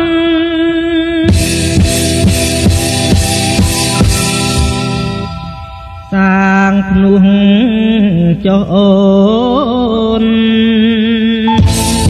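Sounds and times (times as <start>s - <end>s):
band drumming: 1.3s - 5.6s, 11.6s - 12.0s.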